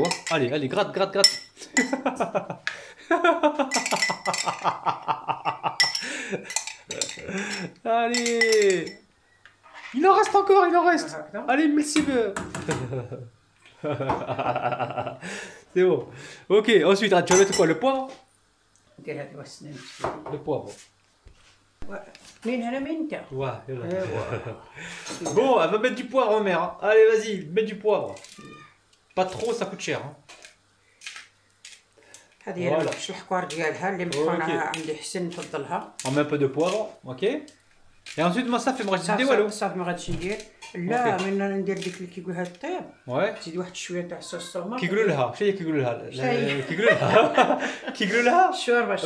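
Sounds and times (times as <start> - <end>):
people talking: 32.5 - 37.4, 38.2 - 43.6, 44.2 - 49.0.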